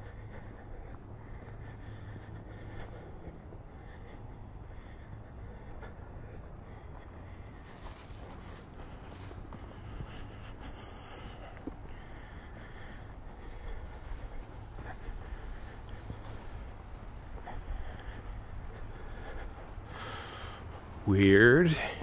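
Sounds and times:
footsteps on dirt trail: 0.0s - 22.0s
heavy breathing: 0.0s - 22.0s.

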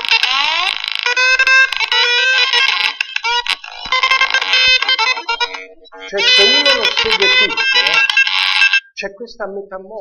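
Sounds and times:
synthetic tones with sliding pitches: 0.0s - 8.8s.

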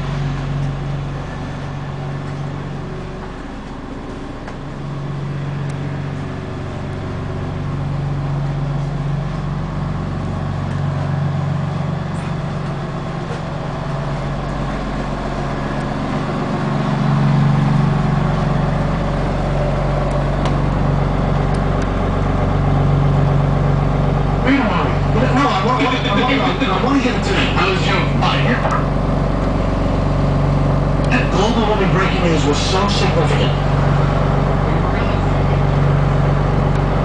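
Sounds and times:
diesel bus engine idling: 0.0s - 37.0s.

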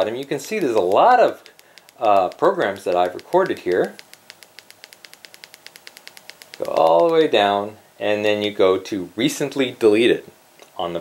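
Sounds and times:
remote control buttons clicking: 0.0s - 7.4s.

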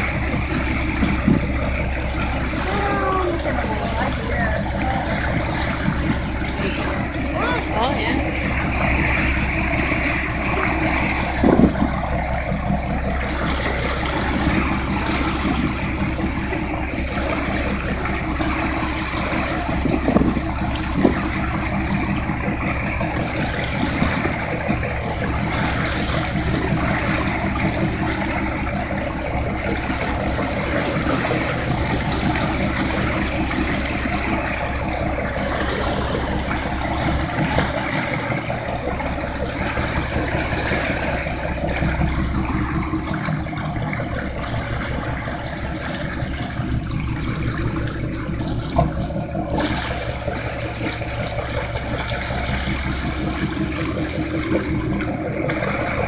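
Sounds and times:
boat engine running: 0.0s - 56.0s
water rushing from wake: 0.0s - 56.0s.

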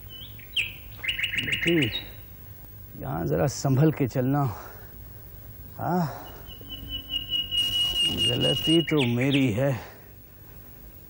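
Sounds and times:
bird chirping: 0.0s - 2.3s, 6.0s - 9.7s.

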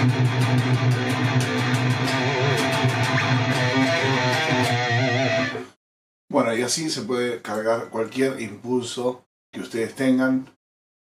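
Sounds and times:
distorted electric guitar riff: 0.0s - 5.8s.

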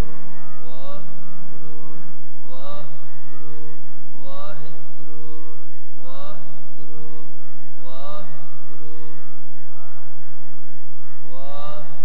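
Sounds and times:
man singing: 0.0s - 9.2s, 11.2s - 12.0s
harmoniums over low drone: 0.0s - 12.0s.

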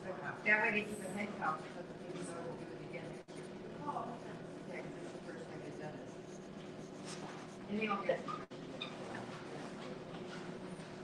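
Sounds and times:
pencil scratching on paper: 4.2s - 8.5s.

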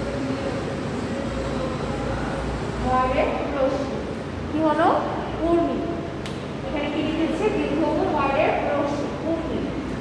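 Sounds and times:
faint steady hum: 0.0s - 10.0s
low mechanical rumble: 0.0s - 10.0s.

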